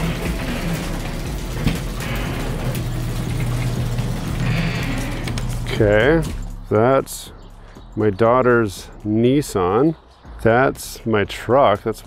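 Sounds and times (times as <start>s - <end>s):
garage door opener motor hum: 0.0s - 6.6s
garage door rattling: 0.0s - 6.7s.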